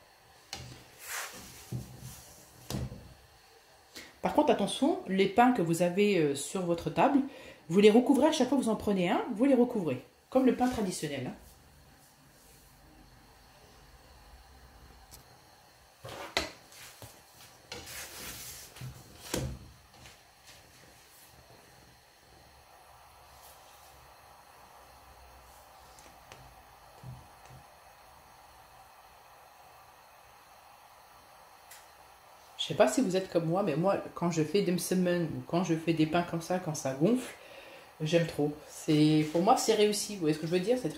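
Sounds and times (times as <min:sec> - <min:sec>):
faint steady hiss: 0:00.0 - 0:40.9
flatbread turned in frying pan: 0:00.5 - 0:03.1, 0:16.0 - 0:20.1.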